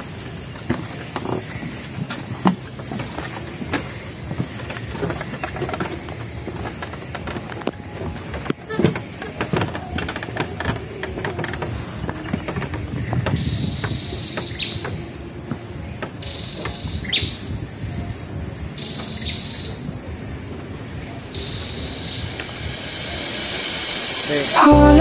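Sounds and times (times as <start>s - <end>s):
footsteps on wooden boardwalk: 0.0s - 16.8s.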